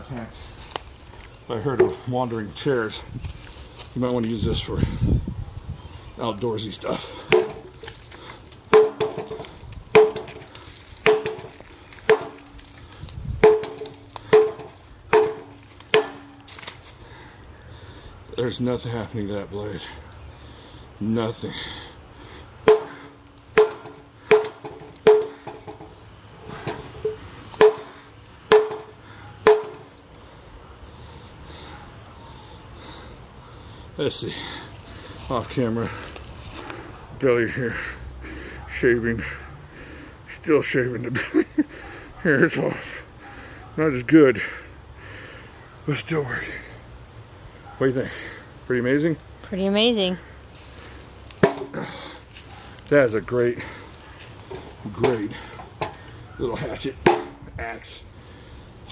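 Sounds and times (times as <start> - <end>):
axe chopping wooden beam: 7.3 - 7.8, 8.7 - 12.6, 13.4 - 16.5, 22.7 - 25.8, 27.6 - 29.9, 51.4 - 51.8, 57.0 - 57.4.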